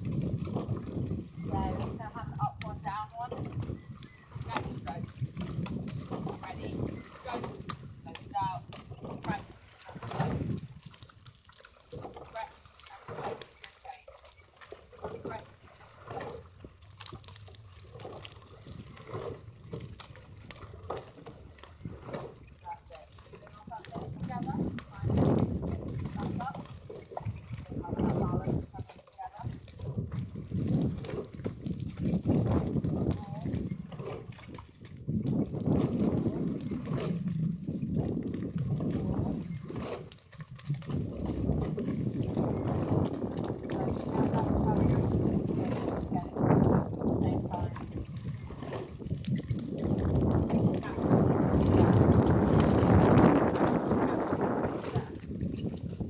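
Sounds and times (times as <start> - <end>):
microphone rumbling: 0.0 - 10.8, 21.8 - 28.9, 29.5 - 37.3, 38.0 - 56.0
oars dipping and sloshing: 0.0 - 56.0.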